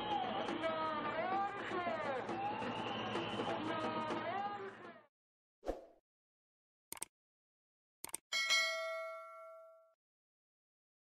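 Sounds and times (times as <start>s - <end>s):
quick double click: 8.0s - 8.2s
notification bell ding: 8.3s - 10.0s.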